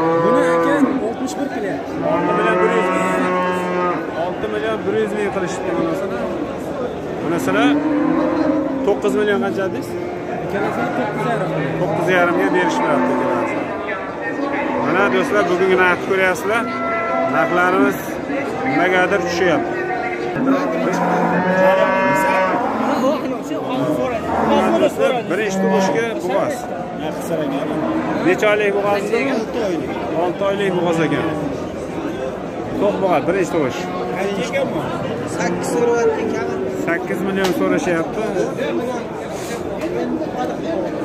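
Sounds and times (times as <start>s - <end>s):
cow mooing: 0.0s - 1.0s, 2.0s - 4.2s, 7.4s - 13.8s, 14.4s - 23.2s, 23.8s - 26.2s, 27.4s - 28.5s
crowd talking: 0.0s - 41.0s.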